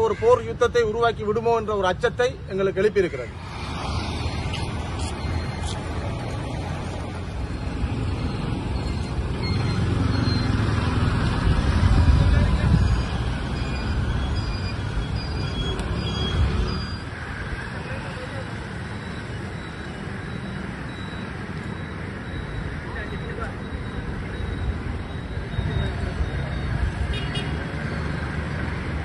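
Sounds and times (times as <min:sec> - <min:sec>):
road traffic: 0:00.0 - 0:29.0.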